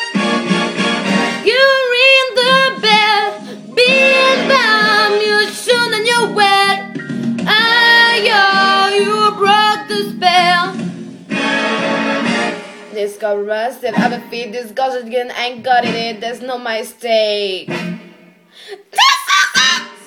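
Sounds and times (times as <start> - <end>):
backing track: 0.0 - 14.4
young woman singing loudly: 1.4 - 6.8.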